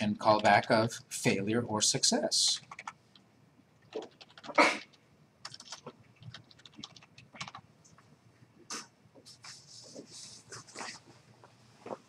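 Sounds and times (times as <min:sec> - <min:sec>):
typing on computer keyboard: 0:02.5 - 0:03.2, 0:03.8 - 0:07.6.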